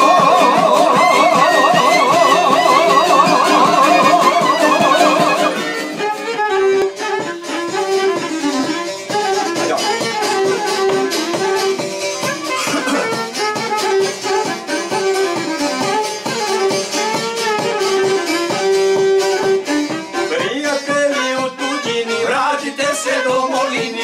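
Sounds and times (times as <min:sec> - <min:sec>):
plucked string instrument strumming: 0:00.0 - 0:23.2
violin playing folk melody: 0:00.0 - 0:24.0.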